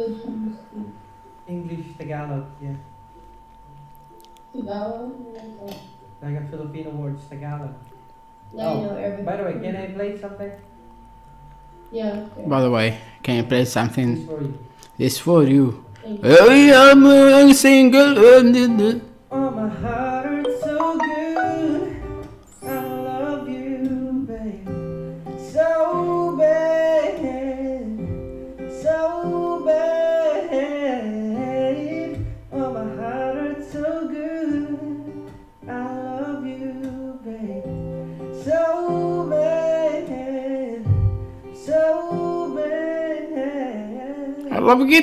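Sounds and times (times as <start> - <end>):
acoustic guitar: 15.9 - 45.0
man singing: 16.3 - 22.1, 28.8 - 41.0, 41.6 - 45.0.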